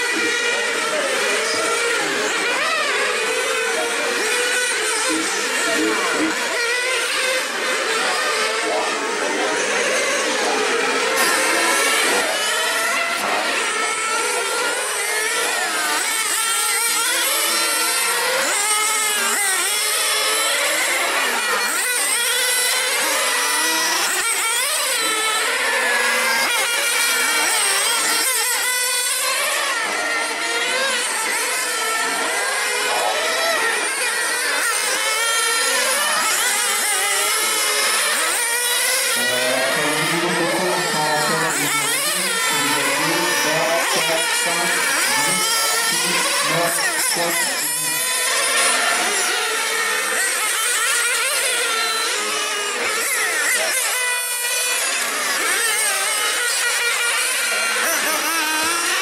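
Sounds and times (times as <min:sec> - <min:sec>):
radio-controlled car engines whining: 0:00.0 - 0:59.0
lower engine note: 0:39.1 - 0:48.2.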